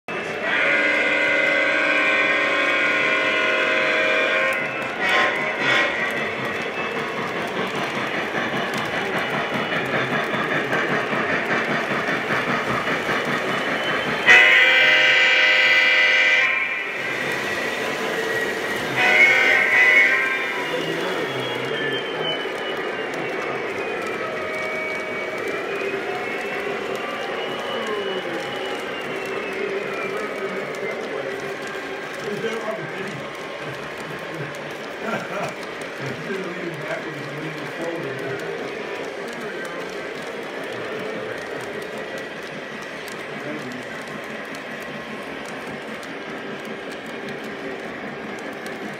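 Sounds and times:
model train chime whistle: 0.2s - 6.8s, 13.5s - 31.1s
model train rolling clatter: 3.0s - 16.2s, 16.8s - 48.9s.

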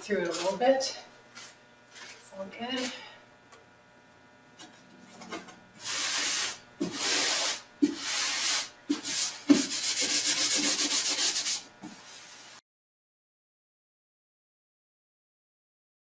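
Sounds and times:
paper rubbing on canvas: 5.8s - 12.6s.

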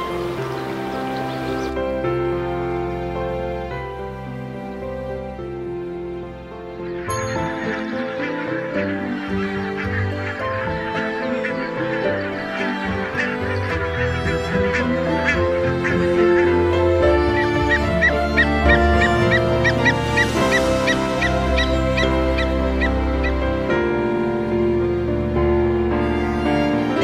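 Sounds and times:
geese honking: 0.0s - 1.8s, 6.8s - 25.0s
background music of held notes: 0.0s - 27.0s.

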